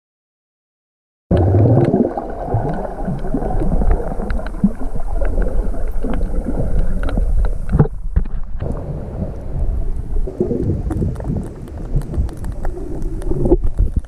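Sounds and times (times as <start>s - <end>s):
muffled underwater rumble: 1.3s - 14.0s
sharp clicks and crackles: 1.3s - 14.0s.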